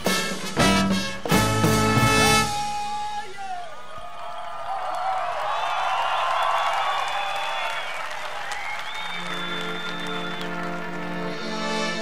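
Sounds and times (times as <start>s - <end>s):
brass band sustained chords: 0.0s - 2.9s, 9.3s - 12.0s
crowd cheering and applauding: 2.2s - 12.0s
long whistles: 5.5s - 12.0s.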